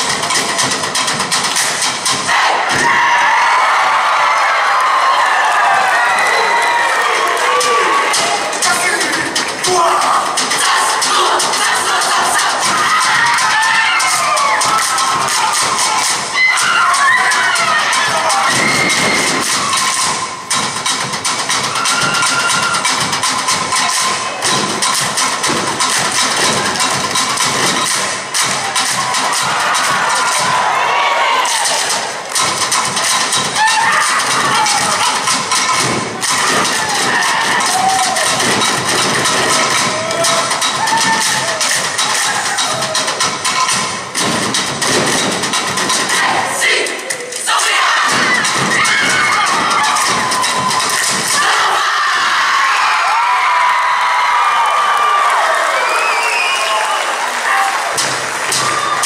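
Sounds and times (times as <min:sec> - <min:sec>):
group singing and chanting: 0:00.0 - 0:03.7, 0:07.8 - 0:53.0.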